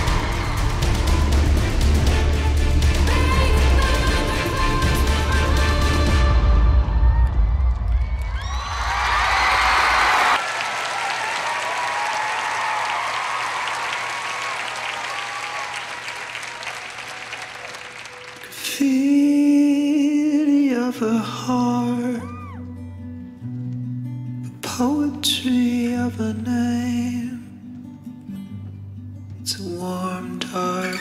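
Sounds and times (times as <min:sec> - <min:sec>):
audience applauding and cheering: 0:00.0 - 0:06.1, 0:06.9 - 0:19.5
slow song: 0:00.0 - 0:10.4, 0:17.0 - 0:31.0.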